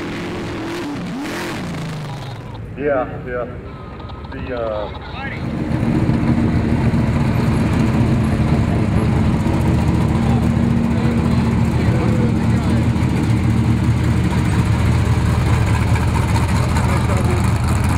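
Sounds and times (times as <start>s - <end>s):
truck engine idling: 0.0s - 17.9s.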